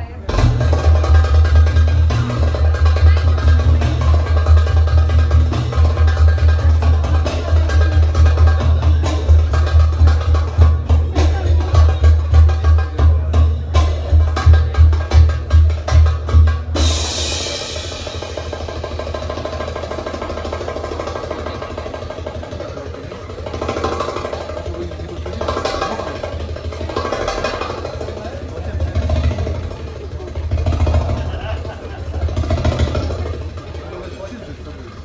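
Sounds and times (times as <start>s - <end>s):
crowd voices and cheering: 0.0s - 35.0s
drum music: 0.2s - 35.0s.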